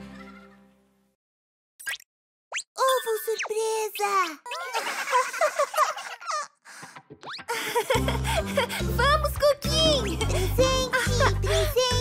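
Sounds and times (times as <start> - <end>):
music: 0.0 - 1.0, 6.8 - 12.0
cartoon baby voice: 2.8 - 4.8, 9.0 - 12.0.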